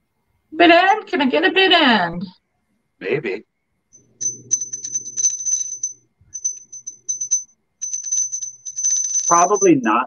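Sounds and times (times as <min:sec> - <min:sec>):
small glass bell ringing: 0:04.0 - 0:10.0.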